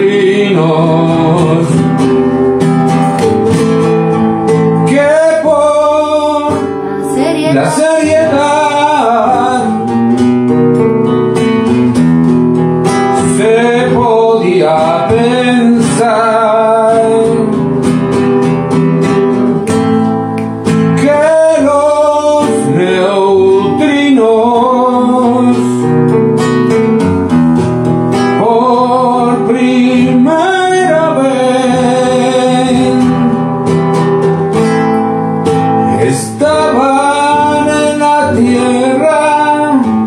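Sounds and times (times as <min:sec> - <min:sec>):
man singing: 0:00.0 - 0:02.4, 0:04.1 - 0:10.3, 0:13.1 - 0:17.8, 0:20.9 - 0:26.1, 0:28.2 - 0:33.6, 0:35.8 - 0:40.0
acoustic guitar strummed and plucked: 0:00.0 - 0:40.0.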